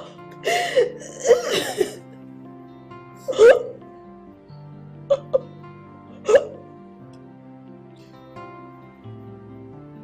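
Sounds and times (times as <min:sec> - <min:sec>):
woman gasping: 0:00.0 - 0:02.0
soft background music: 0:00.0 - 0:10.0.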